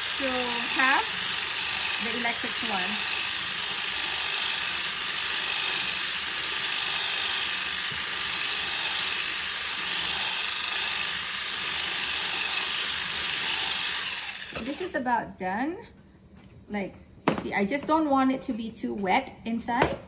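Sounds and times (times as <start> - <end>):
electric mixer whirring: 0.0 - 15.0.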